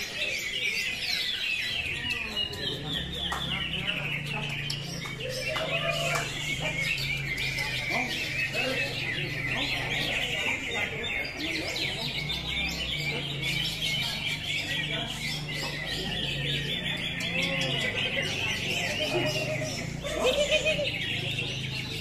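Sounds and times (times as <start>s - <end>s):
birds chirping and trilling: 0.0s - 22.0s.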